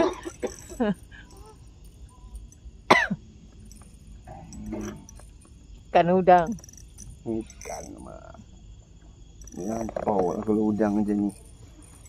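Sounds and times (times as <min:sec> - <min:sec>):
person coughing: 0:00.0 - 0:00.8, 0:02.9 - 0:03.2
faint voices: 0:04.3 - 0:05.2, 0:07.3 - 0:08.4, 0:09.6 - 0:11.4.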